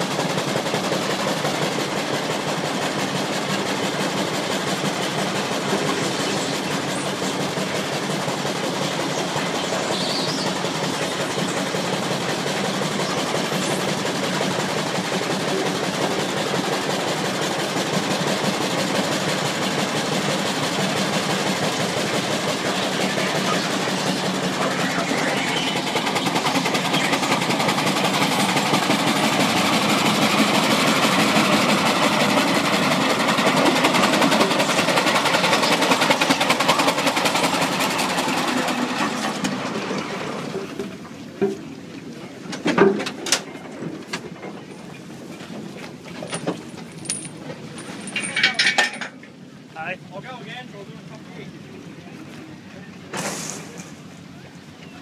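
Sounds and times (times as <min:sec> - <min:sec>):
steam engine chugging: 0:00.0 - 0:55.0.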